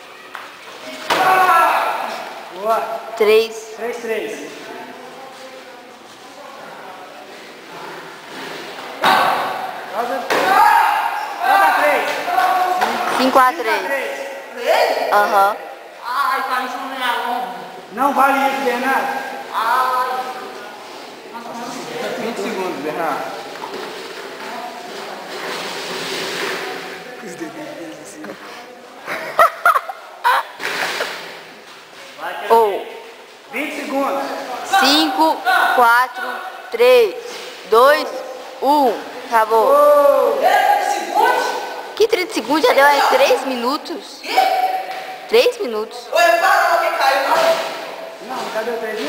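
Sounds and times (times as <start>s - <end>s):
voices shouting: 0.9s - 2.5s, 9.0s - 13.3s.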